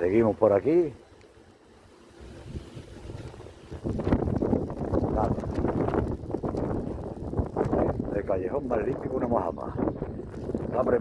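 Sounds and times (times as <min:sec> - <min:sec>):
wind buffeting microphone: 0:02.2 - 0:11.0.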